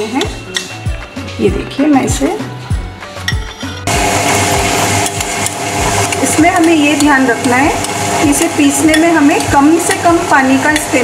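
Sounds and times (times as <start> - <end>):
background music with steady beat: 0.0 - 11.0
wet grinder whirring: 3.9 - 11.0.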